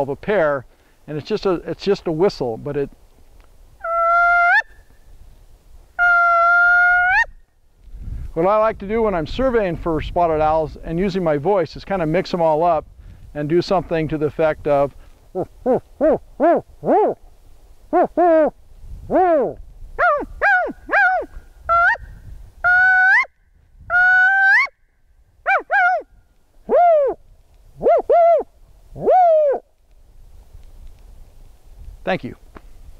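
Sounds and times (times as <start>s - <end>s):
man imitating owl hoots: 3.8s - 4.7s, 6.0s - 7.3s, 15.3s - 17.2s, 17.9s - 22.0s, 22.6s - 23.3s, 23.9s - 24.7s, 26.6s - 27.2s, 27.8s - 29.7s.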